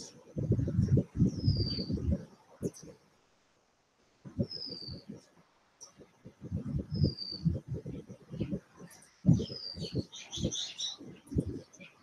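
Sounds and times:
birds chirping: 0.0 - 2.9, 4.3 - 5.2, 5.9 - 12.0.

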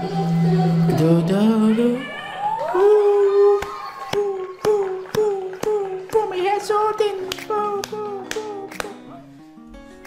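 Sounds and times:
hands clapping in rhythm: 3.5 - 9.1.

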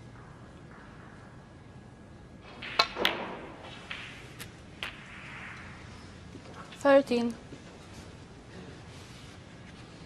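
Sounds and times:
snooker balls clacking: 2.4 - 5.7
cue tip striking ball: 2.5 - 5.6.

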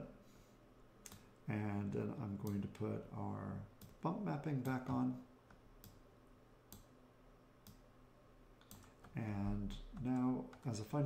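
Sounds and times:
computer mouse clicking: 4.6 - 6.0, 6.7 - 6.9, 8.6 - 9.2.

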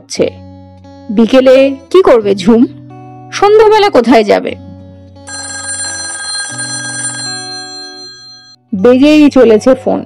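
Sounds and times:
soft background music: 0.0 - 10.0
telephone bell ringing: 5.3 - 8.7.

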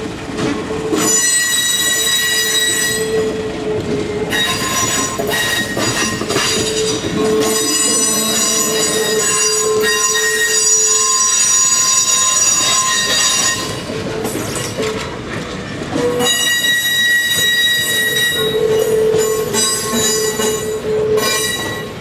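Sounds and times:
train wheels squealing on rails: 0.4 - 22.0.

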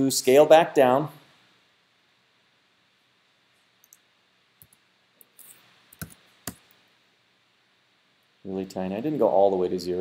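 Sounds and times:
mouse and keyboard clicks: 4.6 - 6.8.

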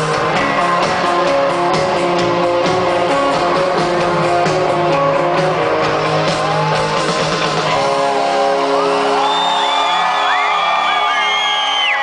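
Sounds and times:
concert crowd cheering: 0.0 - 12.0.

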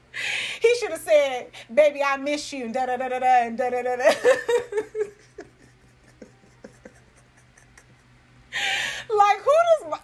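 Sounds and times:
low room hum: 0.0 - 10.0
woman giggling stifled: 4.1 - 8.8.

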